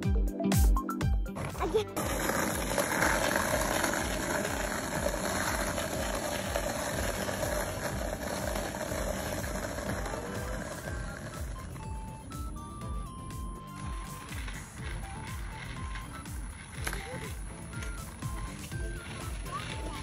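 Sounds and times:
skateboard wheels rolling on asphalt: 1.3 - 20.0.

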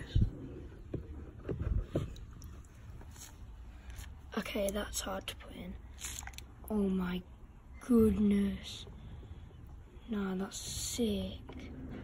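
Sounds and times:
low thumps and light knocks: 0.0 - 3.1.

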